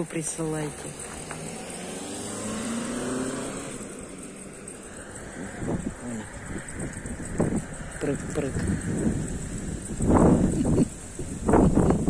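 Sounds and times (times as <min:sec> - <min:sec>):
low rumbles: 0:00.0 - 0:12.0
car driving past: 0:00.6 - 0:10.8.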